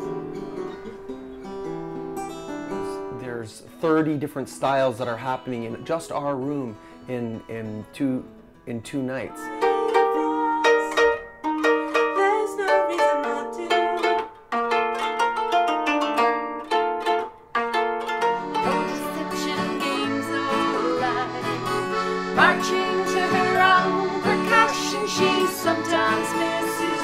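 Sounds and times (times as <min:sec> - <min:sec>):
koto melody: 0:09.1 - 0:27.0.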